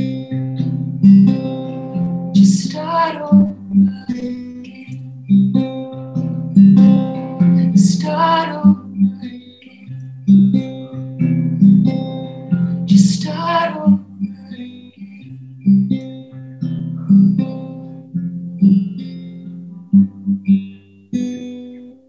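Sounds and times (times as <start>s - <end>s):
acoustic guitar chords: 0.0s - 22.0s
woman singing: 2.3s - 5.1s, 6.8s - 10.0s, 12.8s - 14.5s.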